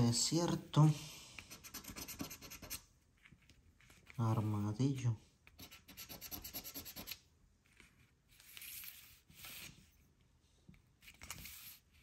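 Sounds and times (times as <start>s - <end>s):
lottery ticket being scratched: 1.6s - 2.8s, 5.6s - 7.2s.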